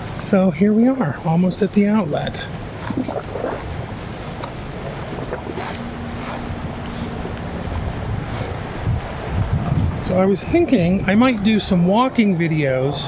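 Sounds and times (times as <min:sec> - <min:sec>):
faint steady hum: 0:00.0 - 0:12.9
wind buffeting microphone: 0:02.2 - 0:13.0.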